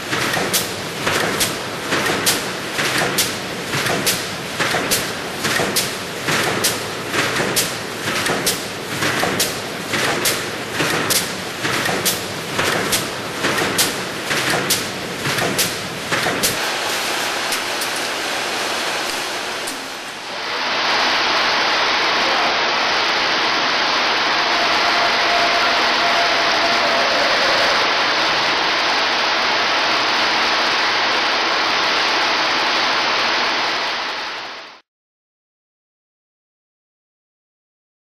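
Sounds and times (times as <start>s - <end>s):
loud steady rushing hiss: 0.0s - 34.8s.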